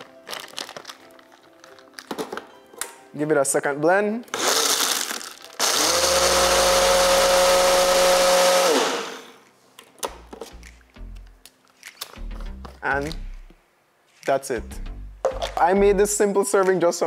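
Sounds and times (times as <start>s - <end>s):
blender crushing ice: 4.3s - 9.4s
blender cup knocking on base: 15.2s - 15.7s.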